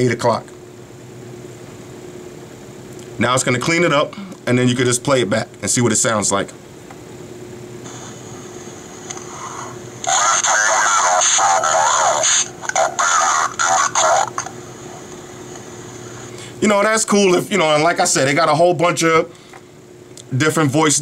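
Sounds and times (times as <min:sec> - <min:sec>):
slowed man's voice from phone speaker: 0:10.0 - 0:14.5.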